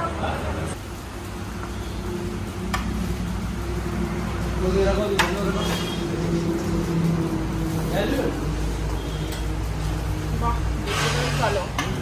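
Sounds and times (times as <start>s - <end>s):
restaurant dining room hum: 0.0s - 12.0s.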